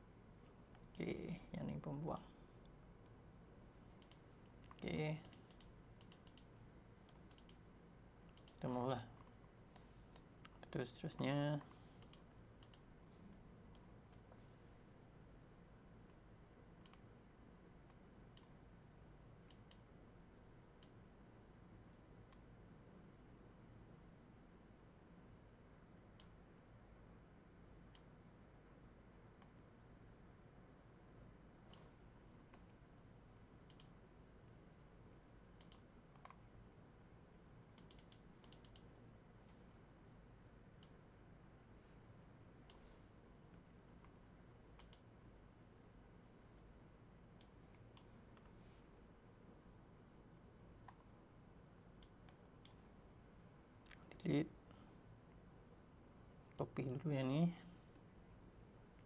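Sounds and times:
faint computer mouse clicks: 3.9 - 7.6, 8.3 - 8.6, 11.6 - 14.4, 16.8 - 17.0, 19.5 - 19.9, 27.9 - 28.1, 31.7 - 31.9, 33.7 - 34.0, 35.6 - 36.4, 37.8 - 39.0, 44.8 - 45.1, 52.0 - 52.8.

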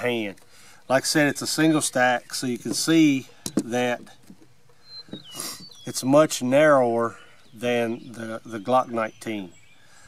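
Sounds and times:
small bird chirping: 4.7 - 10.0.

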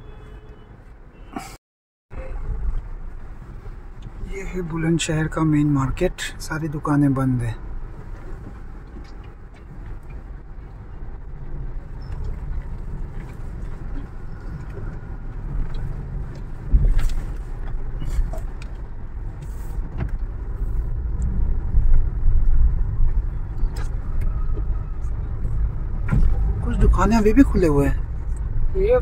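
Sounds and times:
car engine and road rumble: 0.0 - 29.0
thump: 26.0 - 26.5.

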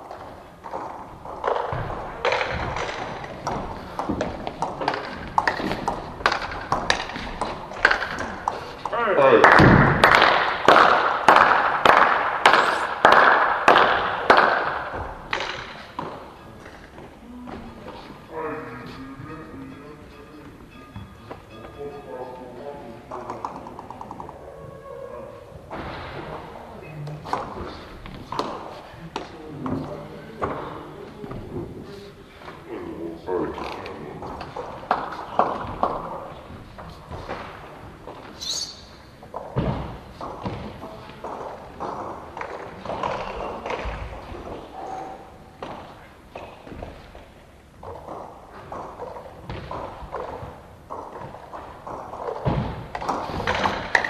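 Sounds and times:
voices echoing in hall: 0.0 - 54.0
high squeak: 38.4 - 38.9
thuds and knocks: 39.4 - 40.9, 49.4 - 54.0.

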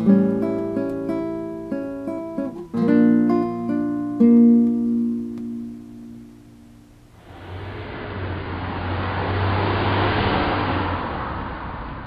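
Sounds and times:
car passing by: 7.1 - 12.0.

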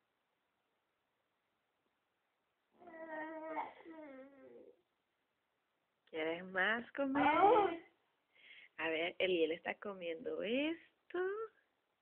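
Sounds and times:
baby babbling: 2.8 - 4.8.

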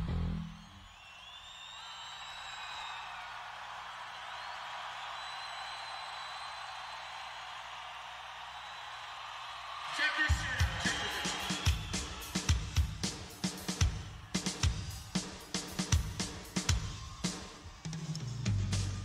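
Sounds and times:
crowd cheering and whistling: 0.1 - 19.0.

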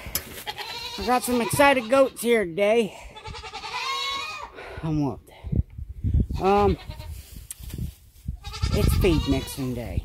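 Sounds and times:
goat bleating: 0.4 - 2.4, 3.0 - 4.5, 6.4 - 7.2, 8.4 - 10.0.

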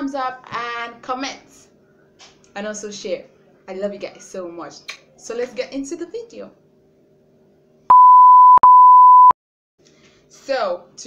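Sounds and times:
electronic beep tone: 7.9 - 9.4.

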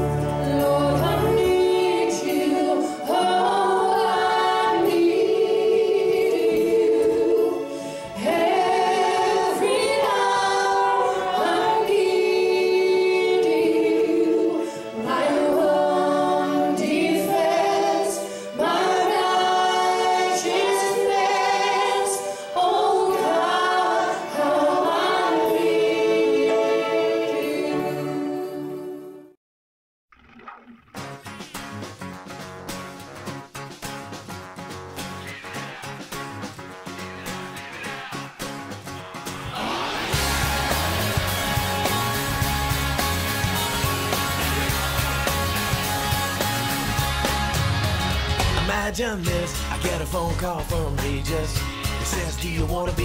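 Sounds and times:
choir singing unaccompanied: 0.0 - 29.4, 39.0 - 48.4.

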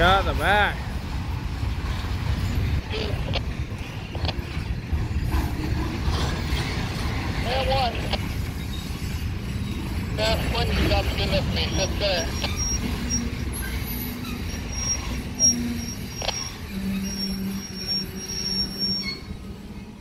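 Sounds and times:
train cars rumbling: 0.0 - 20.0
high-pitched wheel squeal: 8.4 - 20.0.

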